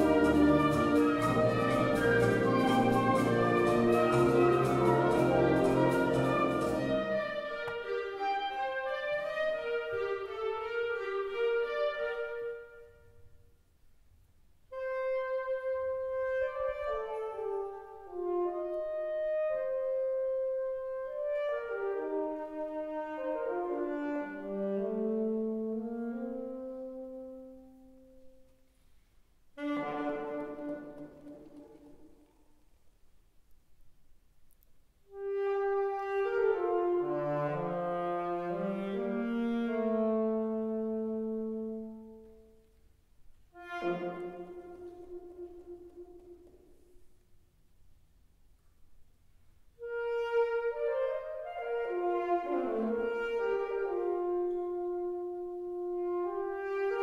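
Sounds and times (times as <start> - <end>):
percussion: 0.0 - 8.5
concert wind band playing: 0.0 - 13.2, 14.7 - 28.3, 29.6 - 32.2, 35.1 - 42.5, 43.5 - 46.8, 49.8 - 57.0
alto saxophone solo: 0.0 - 13.4, 14.7 - 28.6, 29.5 - 32.0, 35.1 - 42.8, 43.5 - 46.8, 49.8 - 57.0.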